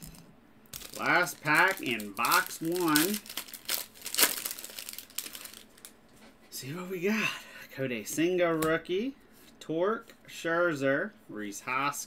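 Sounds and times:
plastic wrapper crinkling: 0:00.0 - 0:06.0.

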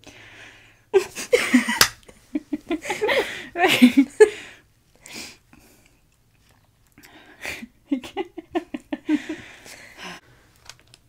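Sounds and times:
stifled breathy laughter: 0:00.9 - 0:04.6, 0:07.4 - 0:10.2.

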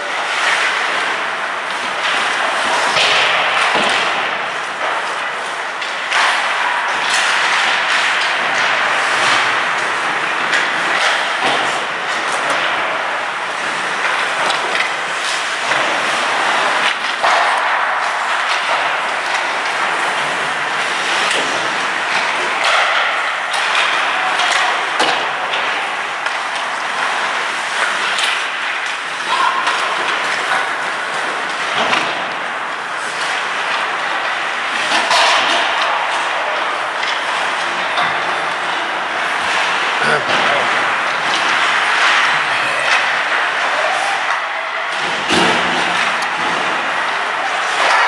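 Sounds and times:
skate blades scraping ice: 0:00.0 - 0:44.3
hockey sticks and puck clacking: 0:00.0 - 0:48.0.

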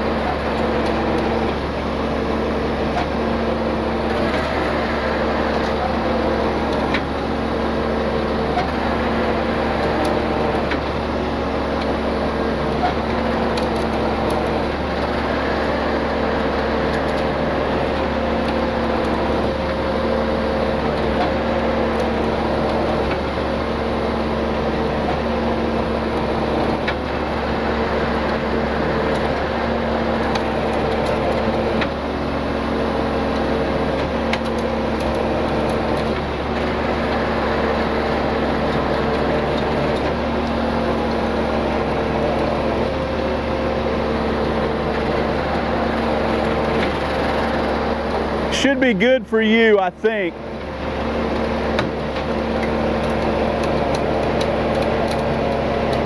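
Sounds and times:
truck engine running: 0:00.0 - 0:56.0.

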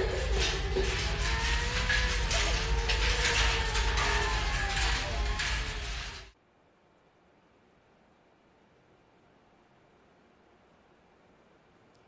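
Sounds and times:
wavering drone: 0:00.0 - 0:06.3
ticking rattling percussion: 0:00.0 - 0:06.4.

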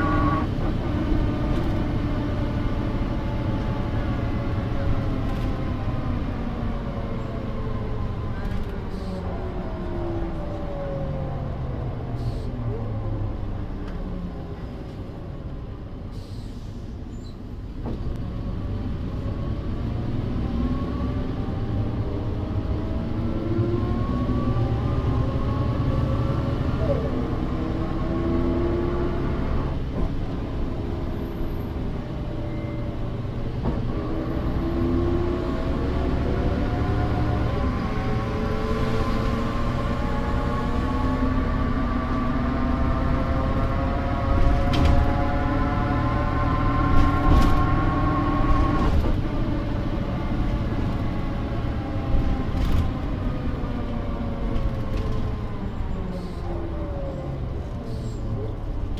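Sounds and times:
diesel engine rumbling: 0:00.0 - 0:58.9.

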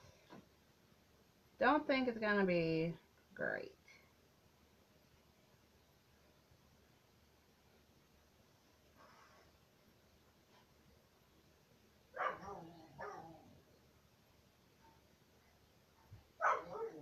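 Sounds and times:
dog barking: 0:12.1 - 0:13.4, 0:16.4 - 0:17.0.

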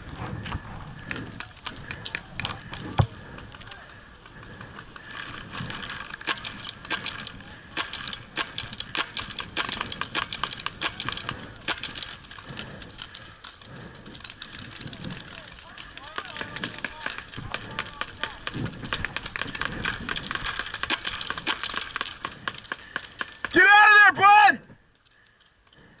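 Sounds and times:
distant voices shouting: 0:00.3 - 0:20.8, 0:22.0 - 0:25.4
paintball markers firing: 0:04.5 - 0:12.3, 0:15.1 - 0:23.6.

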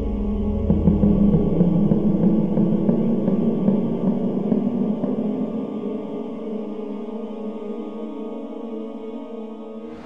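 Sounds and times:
eerie low wavering drone music: 0:00.0 - 0:10.0.

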